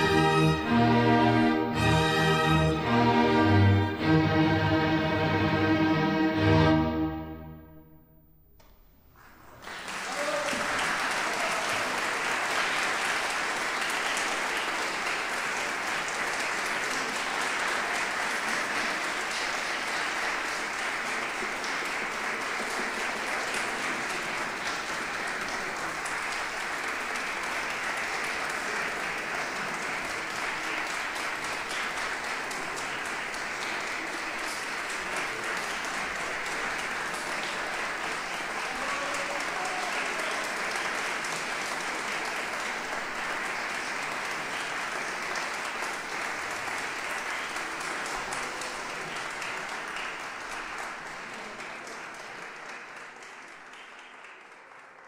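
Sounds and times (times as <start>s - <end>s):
audience applauding: 0.0s - 7.6s, 9.2s - 55.0s.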